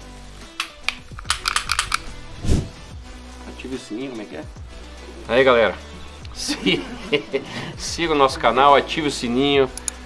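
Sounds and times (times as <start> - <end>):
pistol action metallic clicks: 0.4 - 2.2.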